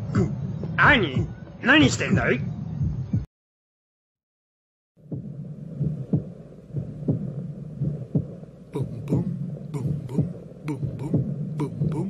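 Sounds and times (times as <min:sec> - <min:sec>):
heartbeat thumps: 0:00.0 - 0:02.2, 0:02.8 - 0:03.3, 0:05.0 - 0:12.0
steady low hum: 0:05.0 - 0:12.0.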